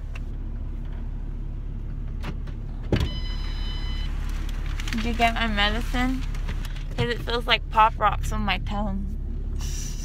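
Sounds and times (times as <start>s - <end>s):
low steady car hum: 0.0s - 10.0s
door-open warning tone: 3.0s - 4.1s.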